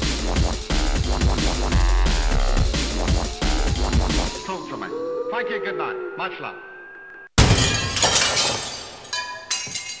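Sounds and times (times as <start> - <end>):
glass smashing: 7.4 - 10.0.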